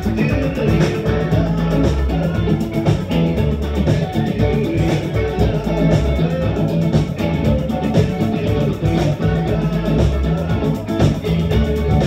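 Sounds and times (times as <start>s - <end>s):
bass guitar: 0.0s - 12.0s
electric guitar: 0.0s - 12.0s
steady drum beat: 0.0s - 12.0s.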